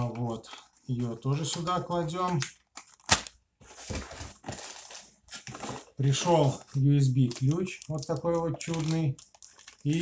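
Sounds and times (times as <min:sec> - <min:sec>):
packaging rustling: 0:00.0 - 0:10.0.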